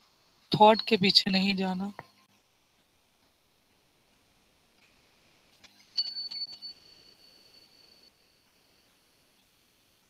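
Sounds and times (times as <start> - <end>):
high-pitched chime ringing: 5.8 - 8.8.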